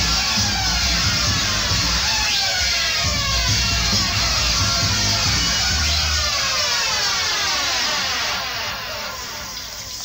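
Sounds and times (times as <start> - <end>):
bass line: 0.0 - 9.8
electronic downward sweep: 0.0 - 10.0.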